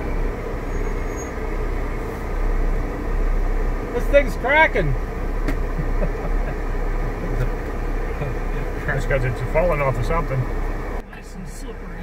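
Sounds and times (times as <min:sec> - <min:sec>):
vehicle engine low hum: 0:00.0 - 0:12.0.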